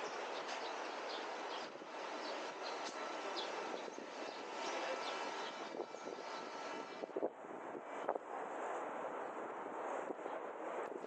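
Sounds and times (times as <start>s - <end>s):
distant traffic hum: 0.0s - 11.0s.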